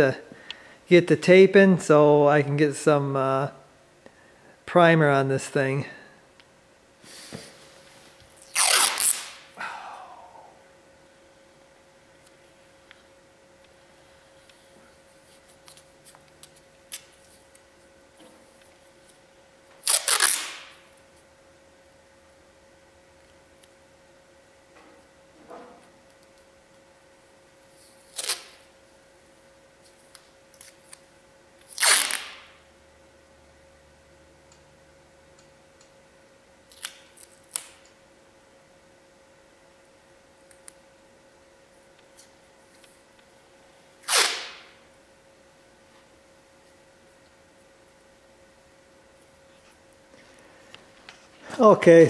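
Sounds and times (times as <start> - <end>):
faint steady hum: 0.0 - 52.0
tape ripping off roll: 8.4 - 9.5, 19.8 - 20.8, 28.0 - 28.7, 31.6 - 32.6, 44.0 - 44.8.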